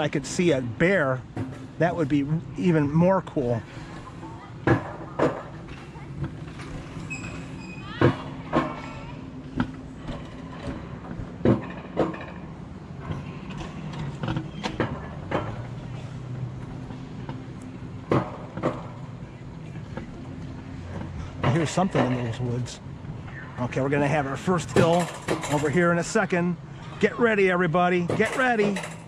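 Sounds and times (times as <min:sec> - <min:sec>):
coaster sled rumbling on rails: 0:00.0 - 0:29.0
sharp clacks of rails: 0:03.8 - 0:19.1, 0:20.8 - 0:27.0, 0:27.8 - 0:29.0.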